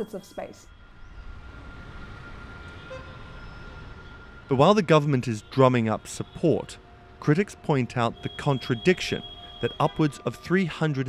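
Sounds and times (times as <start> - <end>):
faint steady high tone: 0.0 - 6.5, 7.3 - 10.6
distant city traffic rumble: 0.0 - 11.0.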